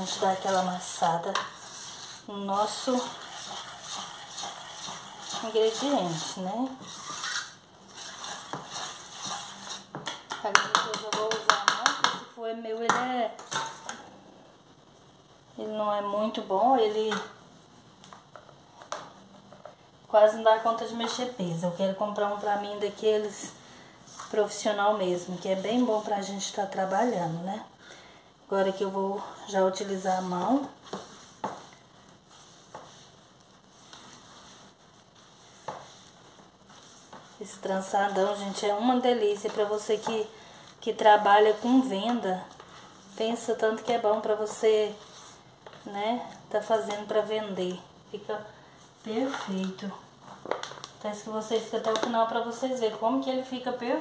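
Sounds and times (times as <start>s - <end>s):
whisk stirring dough: 0.0s - 11.8s.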